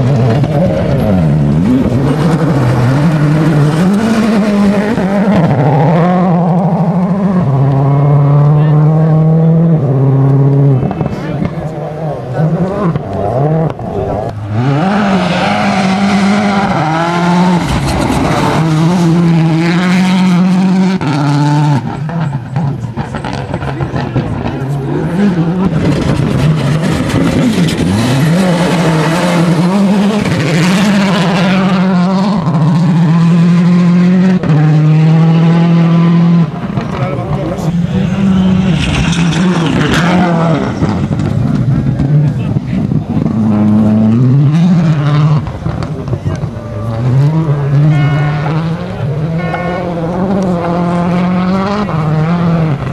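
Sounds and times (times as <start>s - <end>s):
rally car engines at full throttle: 0.0s - 52.9s.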